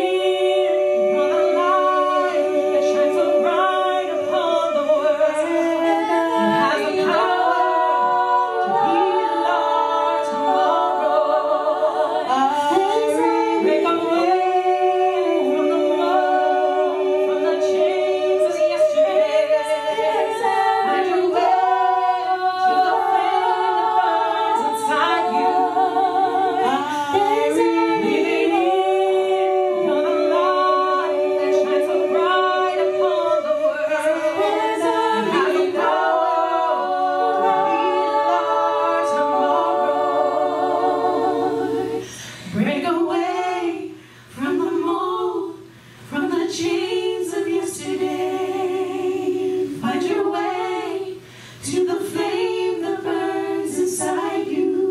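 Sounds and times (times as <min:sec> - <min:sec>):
a cappella group singing in harmony: 0:00.0 - 0:54.9.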